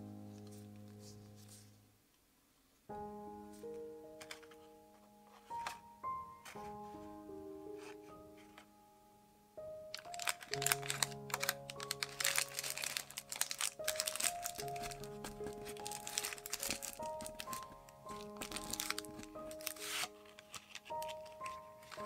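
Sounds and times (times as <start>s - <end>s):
soft background music: 0.0s - 2.0s, 2.8s - 22.0s
paper cups crinkling: 9.9s - 22.0s.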